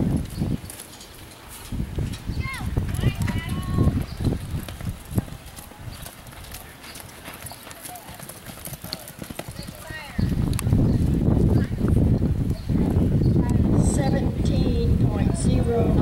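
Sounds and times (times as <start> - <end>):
horse hoofbeats on dirt: 0.0 - 13.1.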